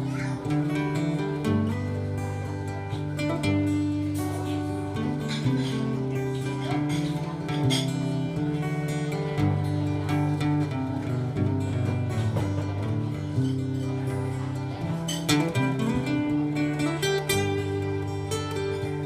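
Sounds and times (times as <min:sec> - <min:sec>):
acoustic guitar strummed: 0:00.0 - 0:19.0.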